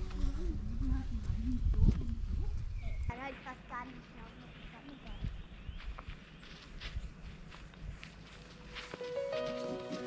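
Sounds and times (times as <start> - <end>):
wind rumble on microphone: 0.0 - 3.2.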